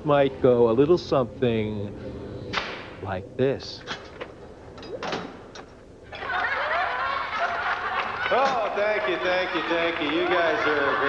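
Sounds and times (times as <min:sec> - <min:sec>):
crowd cheering and clapping: 0:06.1 - 0:11.0.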